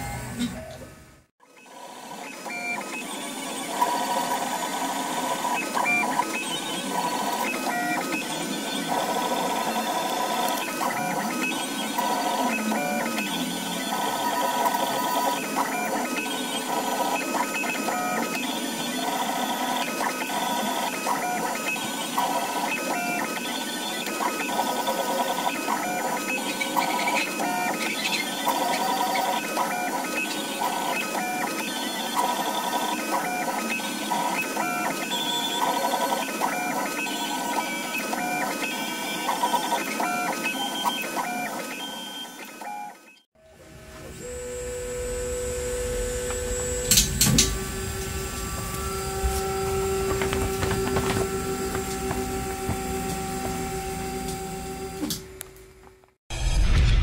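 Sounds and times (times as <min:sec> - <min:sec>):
stepper motors whining: 0:00.0 - 0:56.0.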